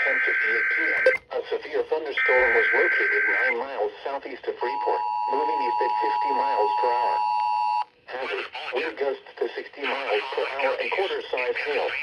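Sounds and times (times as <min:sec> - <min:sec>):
synthesized voice speaking: 0:08.1 - 0:12.0.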